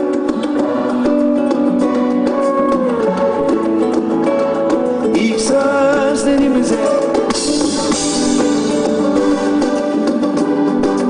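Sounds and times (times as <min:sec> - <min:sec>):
drum and cymbal beat: 0:00.0 - 0:11.0
guitars: 0:00.0 - 0:11.0
plucked-string melody: 0:00.0 - 0:11.0.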